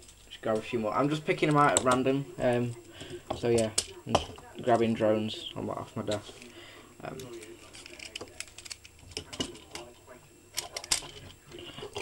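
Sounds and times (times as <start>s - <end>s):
plastic parts clicking: 7.2s - 9.9s.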